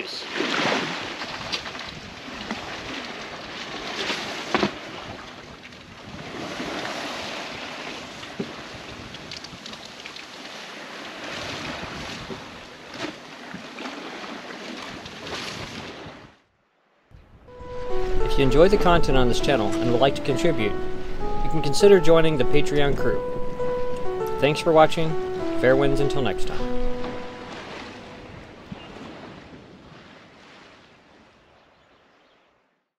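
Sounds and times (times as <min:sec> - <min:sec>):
water rushing along a hull: 0:00.0 - 0:16.4, 0:17.5 - 0:31.7
wind gusting over microphone: 0:05.9 - 0:07.7, 0:11.4 - 0:12.6, 0:27.9 - 0:30.4.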